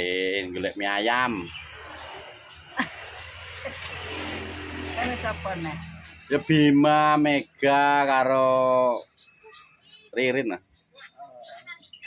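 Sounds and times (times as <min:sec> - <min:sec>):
vehicle engine droning: 0:01.5 - 0:07.2.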